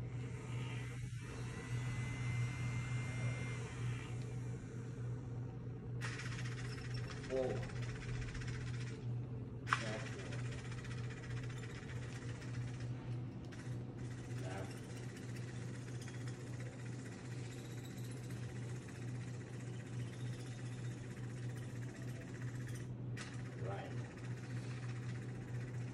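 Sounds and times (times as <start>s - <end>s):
small motors humming: 0.0s - 25.9s
sharp click: 9.7s - 10.1s.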